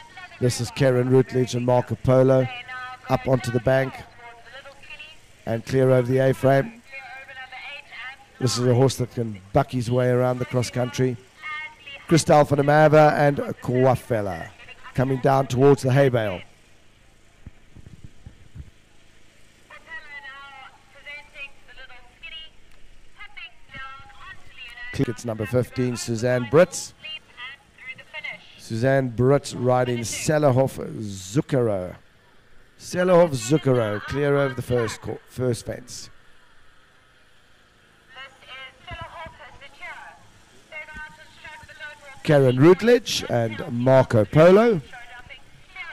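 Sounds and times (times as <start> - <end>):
low steady hum: 0.0 - 45.9.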